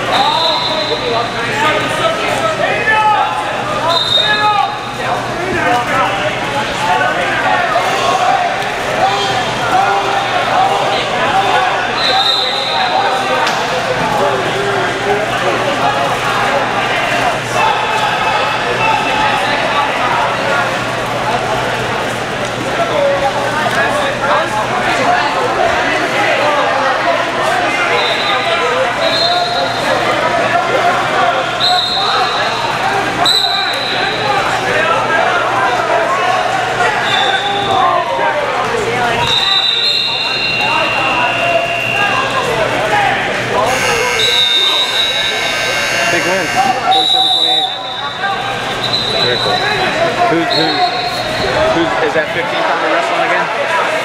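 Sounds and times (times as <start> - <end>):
people talking and calling out: 0.0 - 54.0
voices echoing in a hall: 0.0 - 54.0.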